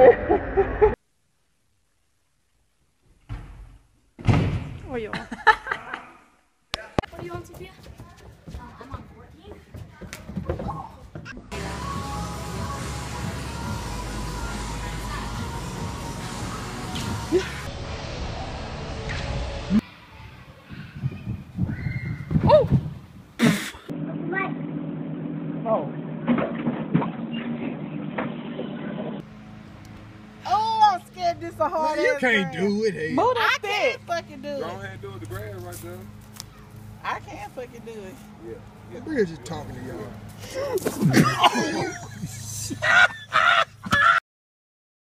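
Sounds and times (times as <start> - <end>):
person cackling laughter: 0.0 - 1.0, 40.4 - 44.2
running footsteps on padded floor: 7.0 - 11.4.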